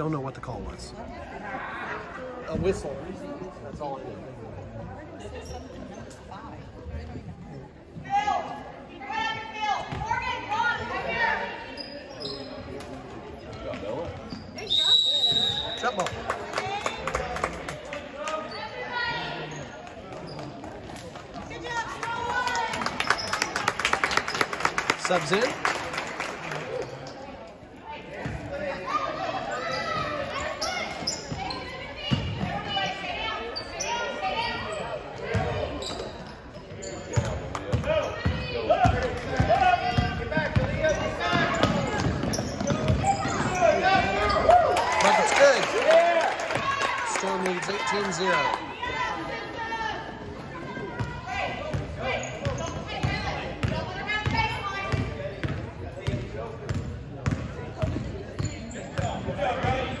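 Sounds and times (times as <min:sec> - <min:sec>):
voices in a hall: 0:00.0 - 1:00.0.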